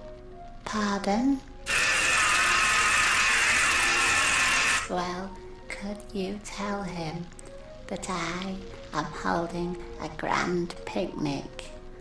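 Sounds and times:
telephone earpiece buzz: 1.7 - 4.9.

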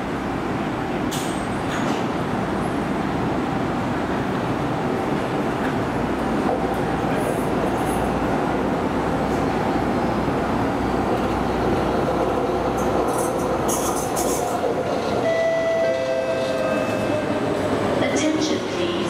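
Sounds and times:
metro train rumble: 0.0 - 19.0.

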